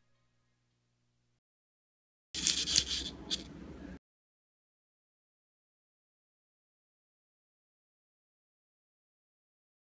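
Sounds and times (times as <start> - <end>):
light metallic clinks and rattles: 2.4 - 3.5.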